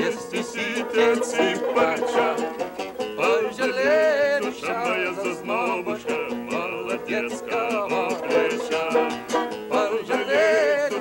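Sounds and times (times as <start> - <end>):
man singing: 0.0 - 2.6, 3.2 - 11.0
acoustic guitar: 0.0 - 11.0
banjo: 0.0 - 11.0.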